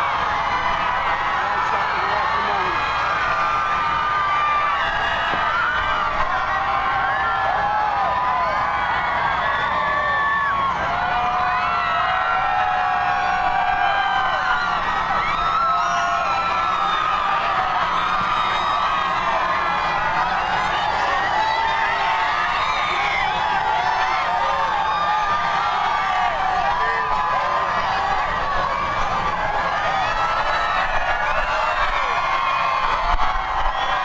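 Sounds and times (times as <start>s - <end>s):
crowd cheering and shouting: 0.0s - 34.0s.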